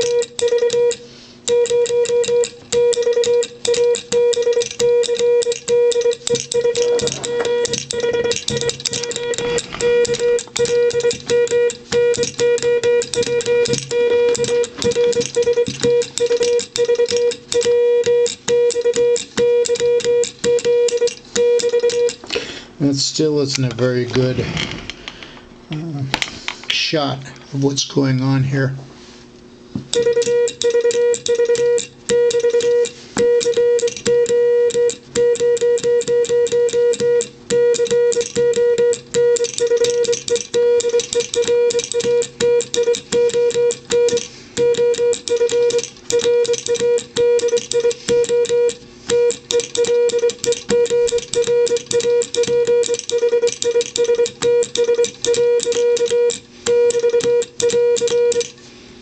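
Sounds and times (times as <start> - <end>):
morse code beeping tone: 0.0 - 22.2, 29.9 - 58.6
telegraph key contacts clicking: 34.9 - 58.6.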